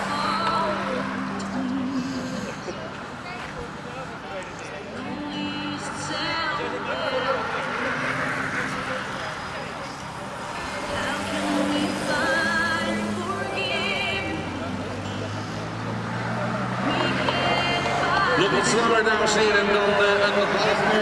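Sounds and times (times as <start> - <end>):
low vehicle engine: 0.0 - 21.0
distant loudspeaker voice and music: 4.8 - 21.0.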